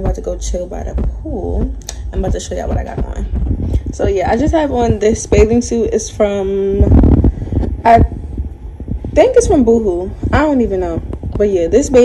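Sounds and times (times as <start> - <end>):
woman speaking: 0.0 - 8.2, 9.1 - 12.0
low rumbling noise: 0.0 - 12.0.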